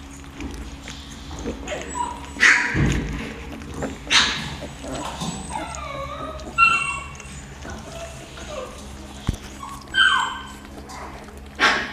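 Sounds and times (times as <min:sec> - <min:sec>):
puppies whining: 0:00.0 - 0:11.9.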